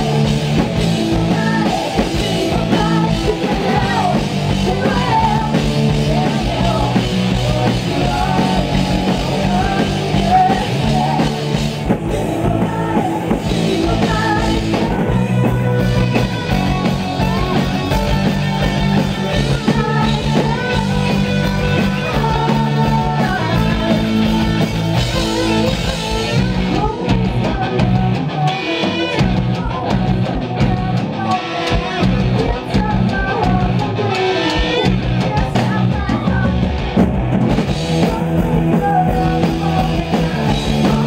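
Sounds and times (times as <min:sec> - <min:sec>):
person singing lead vocal: 0:00.0 - 0:37.0, 0:37.7 - 0:41.0
bass guitar: 0:00.0 - 0:41.0
drum kit: 0:00.0 - 0:41.0
electric guitar: 0:00.0 - 0:41.0.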